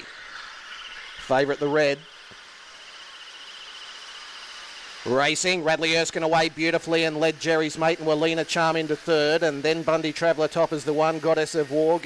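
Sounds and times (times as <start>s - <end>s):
insects chirring: 0.0s - 10.5s.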